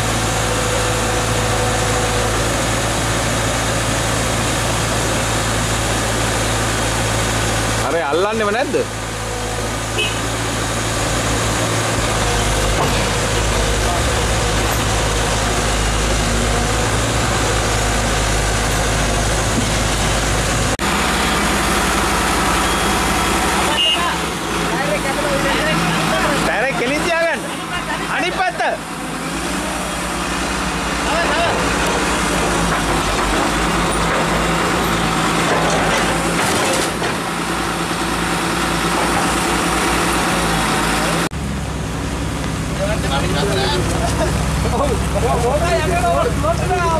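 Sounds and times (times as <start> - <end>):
heavy diesel engines running hard: 0.0 - 46.9
people's voices: 12.1 - 17.6, 23.5 - 30.1, 30.7 - 33.4, 42.7 - 46.9.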